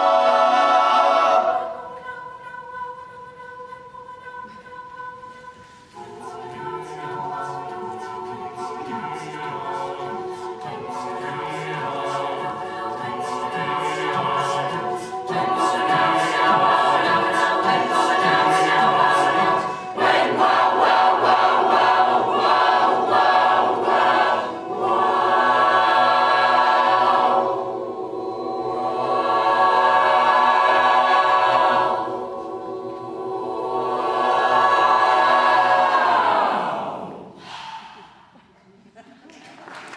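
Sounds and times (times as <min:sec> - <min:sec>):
choir singing a cappella: 0:00.0 - 0:38.6.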